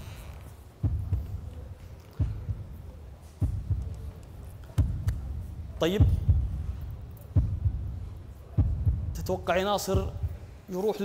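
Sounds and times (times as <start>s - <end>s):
heartbeat-style double thump: 0.2s - 10.6s.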